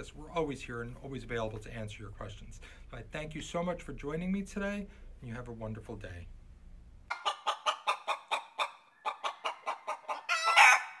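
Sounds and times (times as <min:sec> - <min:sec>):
chicken clucking: 0:07.1 - 0:11.0
chicken drawn-out call: 0:07.1 - 0:11.0.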